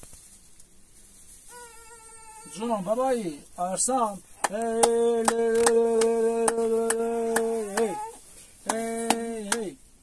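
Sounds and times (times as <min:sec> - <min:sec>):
newborn baby crying: 0:01.5 - 0:03.0, 0:07.5 - 0:08.2.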